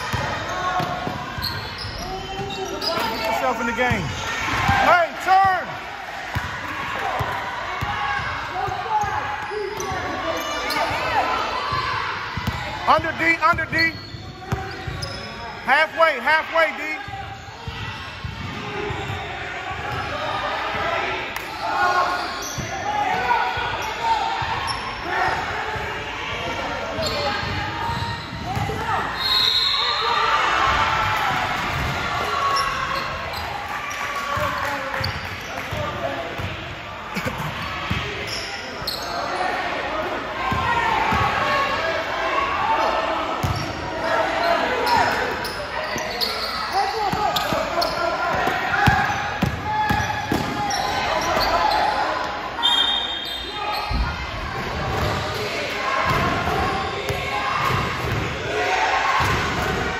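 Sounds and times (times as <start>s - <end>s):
basketball bouncing on gym court: 6.3s - 6.5s, 12.4s - 15.2s, 31.3s - 32.0s, 37.2s - 38.2s, 47.0s - 51.6s, 56.1s - 58.3s
voices calling out: 37.1s - 59.9s.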